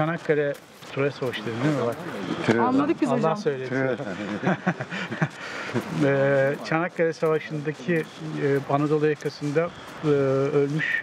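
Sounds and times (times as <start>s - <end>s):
man chuckling: 4.0s - 6.1s.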